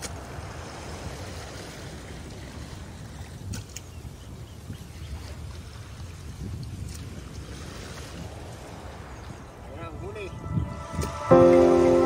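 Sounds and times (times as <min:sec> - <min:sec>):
shallow sea waves washing: 0:00.0 - 0:04.2, 0:04.8 - 0:12.0
wind buffeting microphone: 0:00.0 - 0:12.0.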